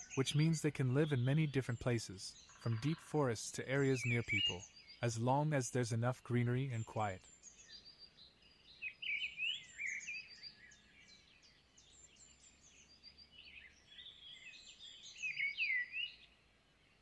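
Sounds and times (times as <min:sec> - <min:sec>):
birds chirping and singing: 0:00.0 - 0:17.0
faint background hiss: 0:00.0 - 0:17.0.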